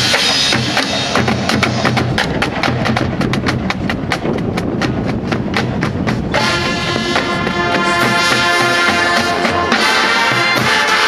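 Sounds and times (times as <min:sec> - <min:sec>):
bass drum: 0:00.0 - 0:09.7
marching percussion clicking beat: 0:00.0 - 0:11.0
brass sustained chord: 0:06.4 - 0:11.0.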